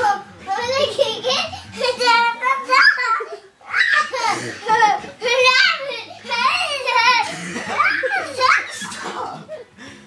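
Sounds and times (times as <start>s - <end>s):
child squealing and laughing: 2.7s - 4.8s, 5.4s - 9.0s.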